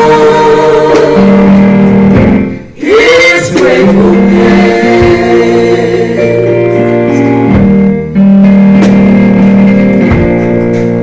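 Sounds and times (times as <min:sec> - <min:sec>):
gospel singing with instruments: 0:00.0 - 0:11.0.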